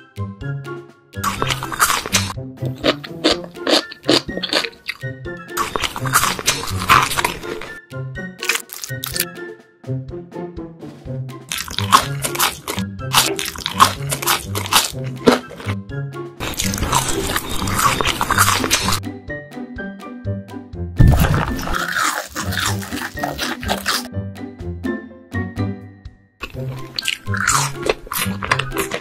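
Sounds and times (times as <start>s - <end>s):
light background music: 0.0s - 29.0s
crunching bites: 1.2s - 7.8s, 8.4s - 9.3s, 11.5s - 15.8s, 16.4s - 19.0s, 21.0s - 24.1s, 26.4s - 29.0s
noisy chewing: 1.2s - 7.8s, 8.4s - 9.2s, 11.5s - 15.8s, 16.4s - 19.0s, 21.0s - 24.1s, 26.4s - 29.0s
deep thud: 21.0s - 21.6s.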